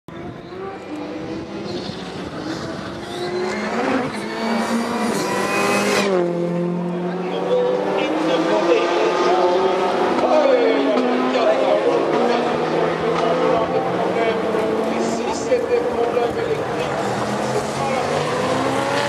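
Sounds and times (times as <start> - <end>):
racing car engines revving: 0.1 - 19.0.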